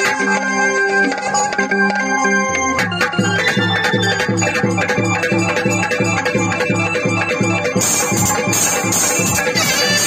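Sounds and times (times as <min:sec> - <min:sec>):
hand drum beat: 0:00.0 - 0:10.0.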